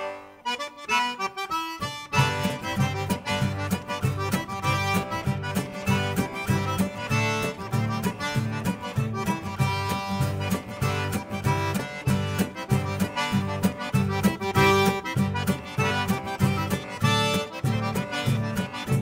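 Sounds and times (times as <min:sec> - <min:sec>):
button accordion: 0:00.0 - 0:19.0
strummed acoustic guitar: 0:00.0 - 0:19.0.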